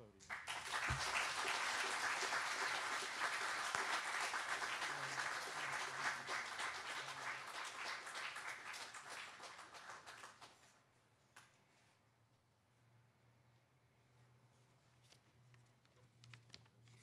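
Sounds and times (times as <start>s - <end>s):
audience applauding: 0.3s - 10.6s.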